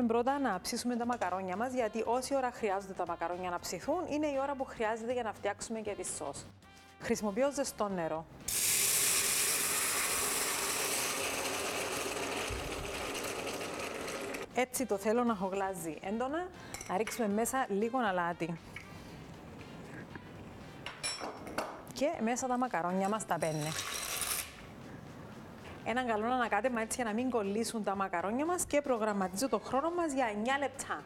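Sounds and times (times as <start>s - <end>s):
hot water pouring into pot: 8.5s - 14.5s.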